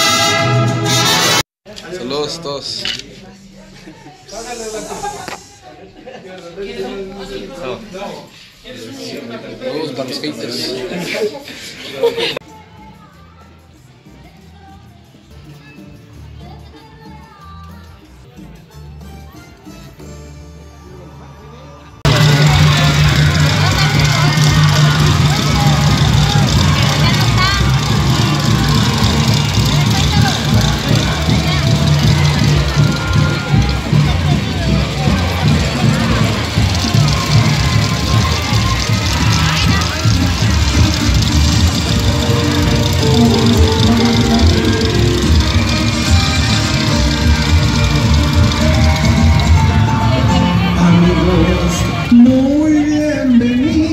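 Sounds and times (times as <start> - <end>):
loud amplified music: 0.0 - 1.4, 22.0 - 53.9
voice over music: 37.2 - 53.9.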